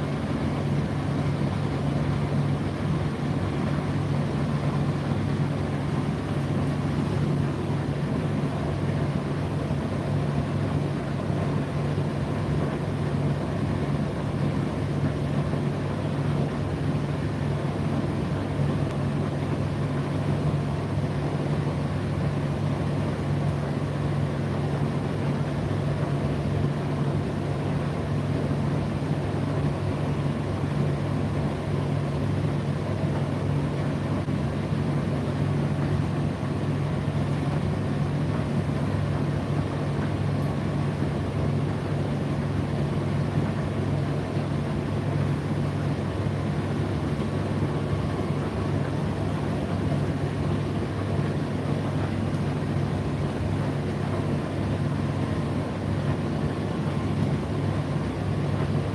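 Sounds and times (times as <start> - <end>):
tumble dryer humming: 0.0 - 58.9.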